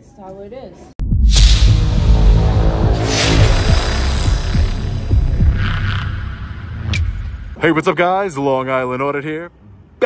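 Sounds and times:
deep throbbing bass drone: 1.0 - 7.6
low thuds: 1.0 - 7.6
higher shimmer: 1.6 - 6.8.

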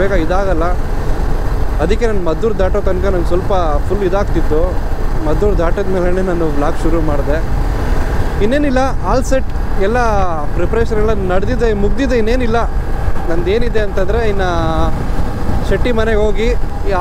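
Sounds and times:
man talking: 0.0 - 0.8, 1.8 - 7.5, 8.4 - 12.7, 13.3 - 15.0, 15.6 - 17.0
motorcycle engine rumble: 0.0 - 17.0
wind noise: 0.0 - 17.0.

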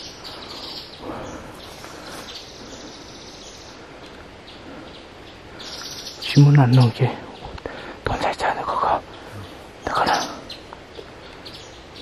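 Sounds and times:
high-pitched background hiss: 0.0 - 12.0
small birds chirping: 0.0 - 12.0.

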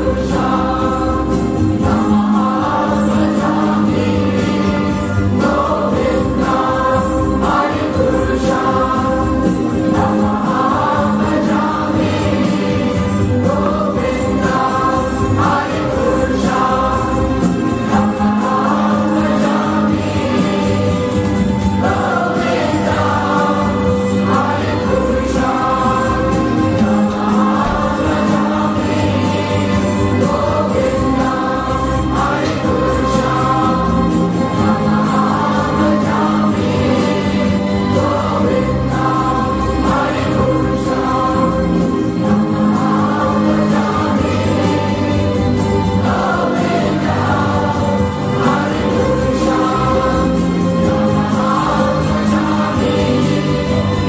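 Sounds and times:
choir singing: 0.0 - 54.0
instrumental accompaniment: 0.0 - 54.0.

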